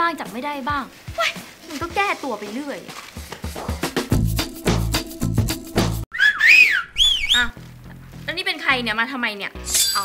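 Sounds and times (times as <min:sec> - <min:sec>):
background music with beat: 0:03.1 - 0:06.1
sliding comic whistle: 0:06.1 - 0:07.5.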